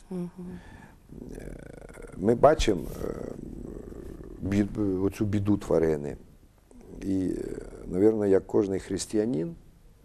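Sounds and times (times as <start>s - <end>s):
low steady background sound: 0.0s - 10.0s
man speaking: 1.1s - 6.2s, 6.8s - 9.6s.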